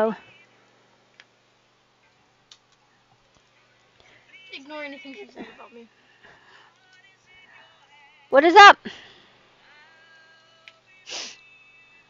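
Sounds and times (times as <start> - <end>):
faint held musical tones: 0.0 - 12.0.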